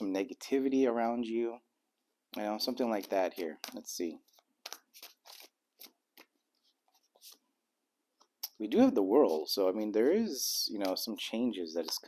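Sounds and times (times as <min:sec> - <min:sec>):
tarot cards shuffling: 0:02.6 - 0:07.4.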